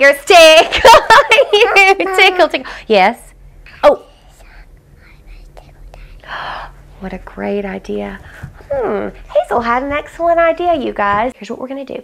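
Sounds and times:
girl whispering: 4.0s - 6.3s.

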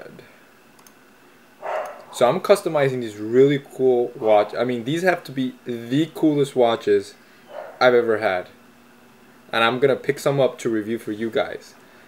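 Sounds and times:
faint clicks: 0.8s - 1.0s.

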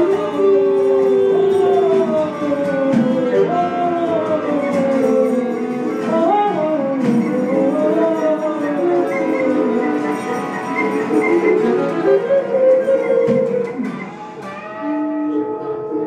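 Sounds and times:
improvised ensemble music: 0.0s - 16.0s.

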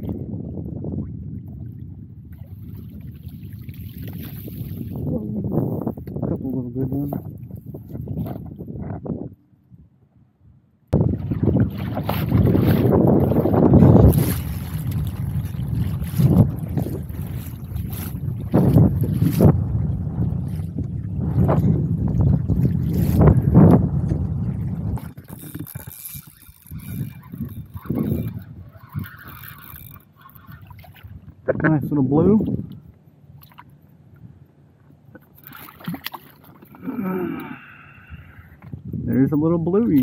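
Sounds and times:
wind buffeting microphone: 0.0s - 33.0s, 36.8s - 40.0s
water splashes: 0.9s - 5.6s, 11.0s - 33.8s, 35.1s - 38.0s.

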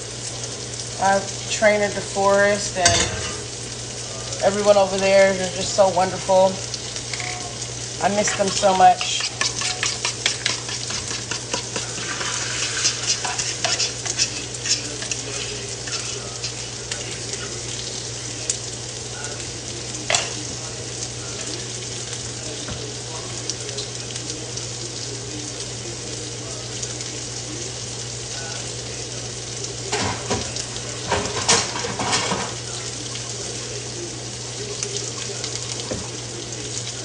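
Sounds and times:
sausages sizzling in a frying pan: 0.0s - 37.0s.

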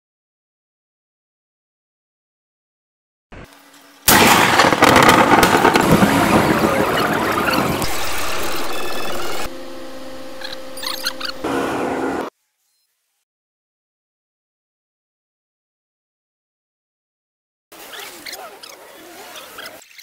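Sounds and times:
steady hum: 3.4s - 12.3s
street and vehicle noise: 3.4s - 12.3s.

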